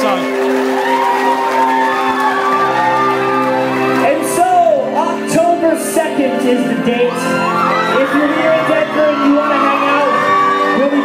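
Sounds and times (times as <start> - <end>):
crowd cheering and whooping: 0.0 - 4.4, 6.8 - 11.0
live pop band music: 2.6 - 11.0.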